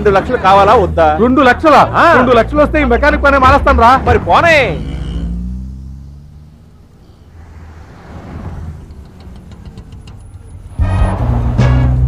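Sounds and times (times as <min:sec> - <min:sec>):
car engine: 0:00.0 - 0:12.0
road traffic rumble: 0:00.0 - 0:12.0
film music with heavy bass: 0:10.6 - 0:12.0.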